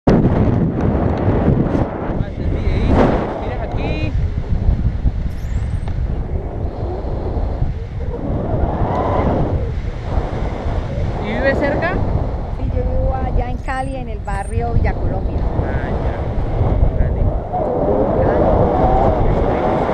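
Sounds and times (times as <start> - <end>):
wind buffeting microphone: 0.1 - 19.9.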